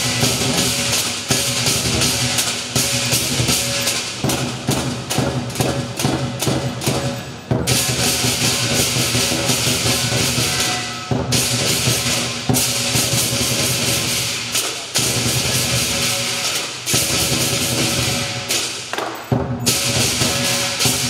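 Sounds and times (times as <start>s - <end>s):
large drum beating: 0.0s - 14.3s
gong: 0.0s - 18.7s, 19.3s - 21.0s
cymbals clashing: 0.0s - 21.0s.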